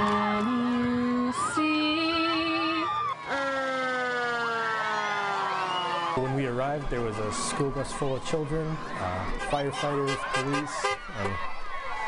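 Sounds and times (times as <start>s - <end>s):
fire truck siren: 1.3s - 6.4s, 9.0s - 11.4s.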